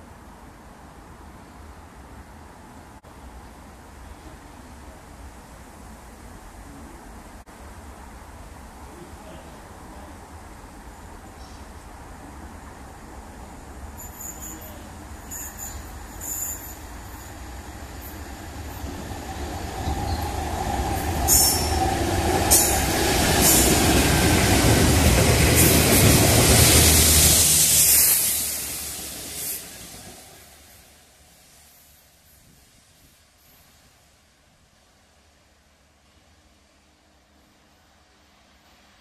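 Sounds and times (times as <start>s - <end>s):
train wheel noise: 13.9s - 33.6s.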